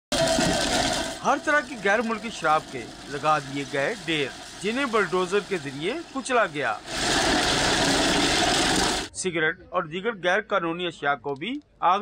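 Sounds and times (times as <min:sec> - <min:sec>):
glass bottles crunching: 0:00.1 - 0:09.1
road roller engine running: 0:00.1 - 0:09.1.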